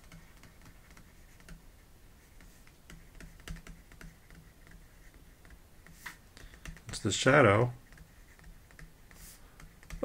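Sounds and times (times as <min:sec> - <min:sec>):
stylus tapping on a tablet: 0:00.0 - 0:01.6, 0:02.4 - 0:07.2, 0:07.8 - 0:10.0.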